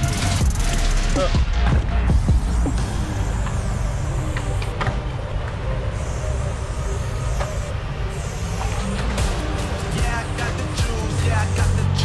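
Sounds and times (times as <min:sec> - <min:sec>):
steady low rumble: 0:00.1 - 0:12.0
aerosol spray can hissing: 0:02.3 - 0:04.7.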